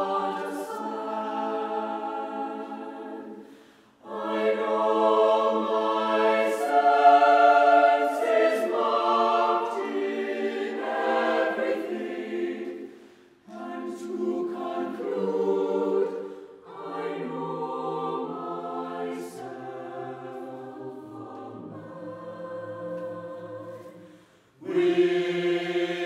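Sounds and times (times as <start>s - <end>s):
mixed choir singing sustained chords: 0.0s - 26.0s.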